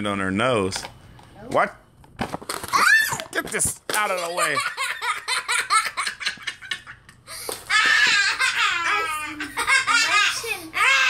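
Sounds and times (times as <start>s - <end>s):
children laughing: 4.1s - 11.0s.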